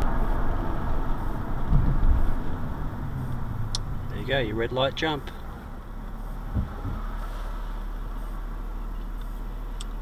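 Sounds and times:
car idling: 0:00.0 - 0:10.0
dull thumps: 0:01.6 - 0:02.4, 0:06.5 - 0:07.1.

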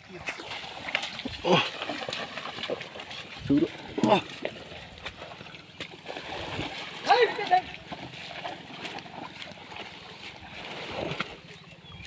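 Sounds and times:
mud and water sloshing: 0:00.0 - 0:12.0.

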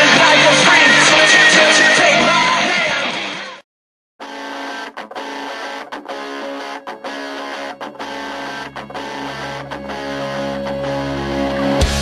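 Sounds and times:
rock guitar riff: 0:00.0 - 0:03.6, 0:04.2 - 0:12.0.

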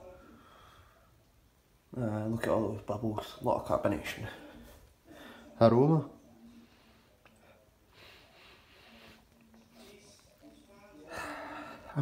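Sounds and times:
person breathing faintly: 0:06.4 - 0:10.2.

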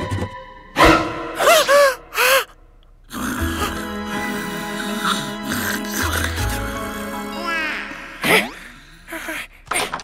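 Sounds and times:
soft background music: 0:03.1 - 0:08.1.

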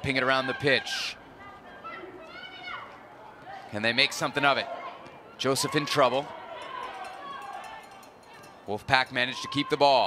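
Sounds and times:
faint high-pitched shout: 0:00.4 - 0:03.7, 0:04.6 - 0:08.6.

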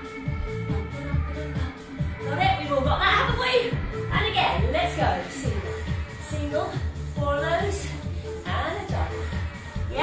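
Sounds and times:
upbeat pop music with voice: 0:00.0 - 0:10.0.

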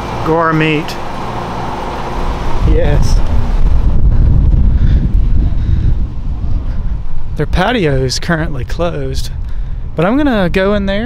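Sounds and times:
wind buffeting microphone: 0:02.1 - 0:11.0.

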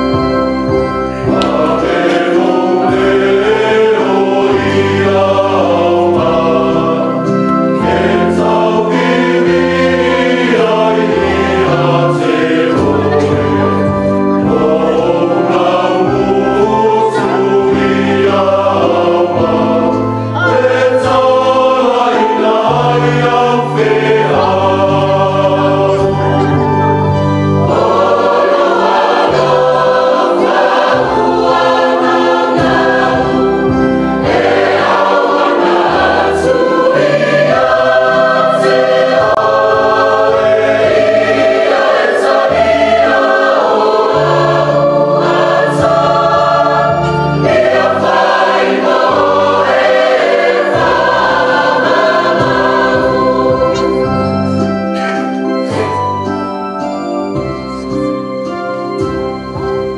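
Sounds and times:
choir singing a hymn: 0:00.0 - 0:59.9
electronic keyboard chords: 0:00.0 - 0:59.9.

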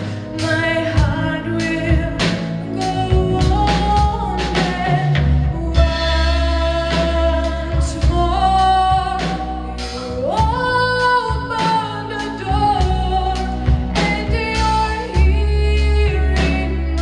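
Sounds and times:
band playing: 0:00.0 - 0:17.0
woman singing: 0:00.0 - 0:17.0.

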